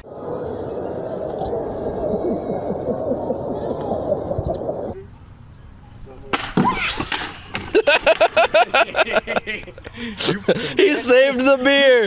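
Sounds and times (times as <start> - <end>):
loud laughter: 7.6 - 10.9.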